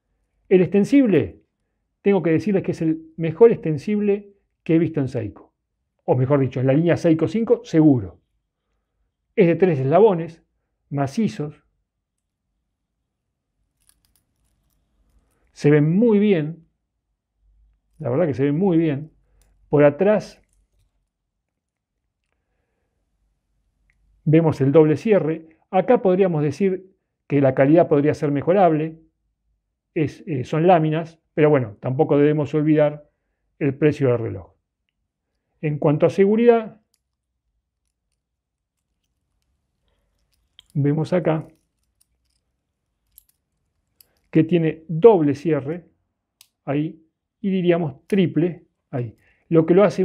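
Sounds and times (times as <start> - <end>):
metal watch bracelet clicking: 36.9 - 40.8, 41.4 - 44.4
watch clasp clicks: 46.4 - 46.6.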